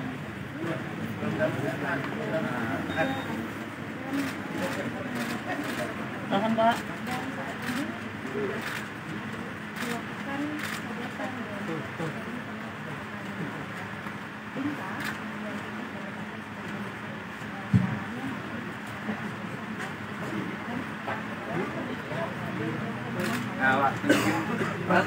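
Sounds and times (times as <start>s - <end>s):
murmur of background voices: 0.0s - 25.0s.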